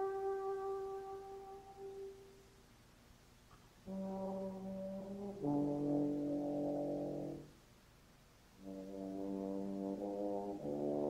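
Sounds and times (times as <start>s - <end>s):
euphonium long held notes: 0.0s - 2.3s.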